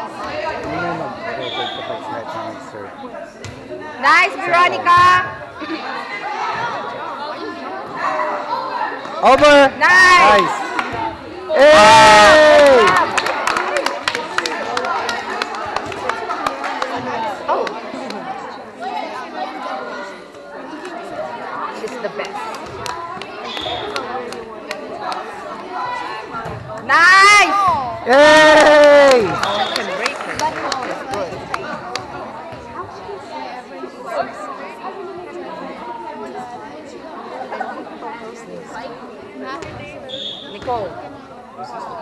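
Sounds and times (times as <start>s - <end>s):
many young voices chattering: 0.0s - 42.0s.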